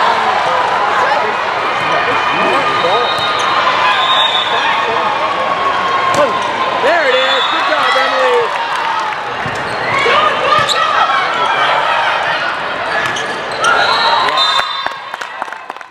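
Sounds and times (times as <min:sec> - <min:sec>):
players shouting calls: 0:00.0 - 0:15.0
crowd and court noise: 0:00.0 - 0:15.9.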